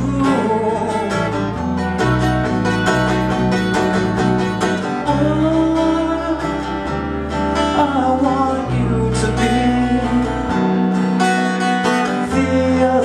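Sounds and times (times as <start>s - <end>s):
acoustic guitar strumming: 0.0s - 13.0s
bass guitar low notes: 0.0s - 13.0s.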